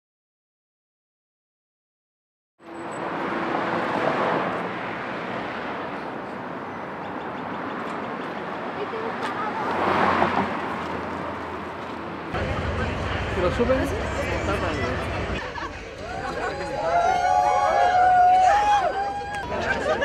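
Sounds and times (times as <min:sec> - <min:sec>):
traffic noise: 0:02.6 - 0:20.0
voices: 0:08.5 - 0:20.0.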